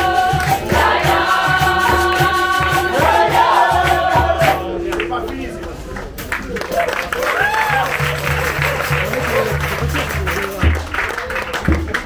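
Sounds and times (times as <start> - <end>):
low drum beats: 0.0 - 4.7, 7.5 - 11.0
percussion ensemble with berimbaus: 0.0 - 4.7, 6.1 - 12.0
group singing: 0.0 - 5.1.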